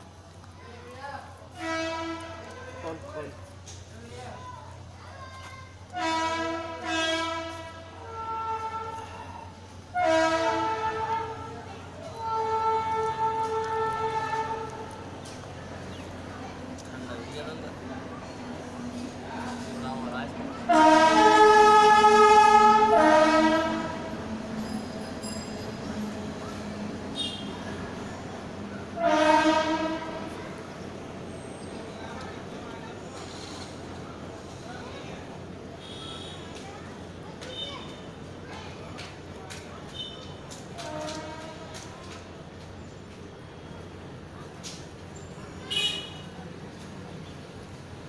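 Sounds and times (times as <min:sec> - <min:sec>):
train horn blast: 0:01.5 - 0:02.8, 0:05.9 - 0:09.1, 0:09.9 - 0:15.0, 0:20.6 - 0:24.2, 0:27.2 - 0:27.7, 0:29.0 - 0:30.4, 0:35.8 - 0:36.6, 0:40.8 - 0:41.8.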